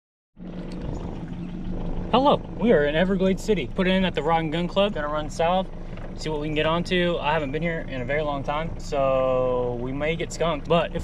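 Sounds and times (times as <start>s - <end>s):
outboard motor running: 0.4s - 11.0s
water noise: 0.4s - 11.0s.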